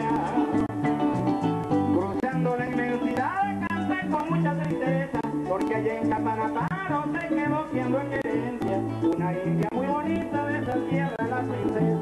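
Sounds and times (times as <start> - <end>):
bass notes: 0.0 - 12.0
man singing: 0.0 - 12.0
maracas: 0.0 - 12.0.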